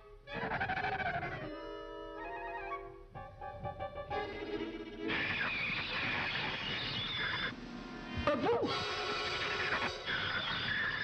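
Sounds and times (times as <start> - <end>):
cartoon orchestral music: 0.3 - 5.1.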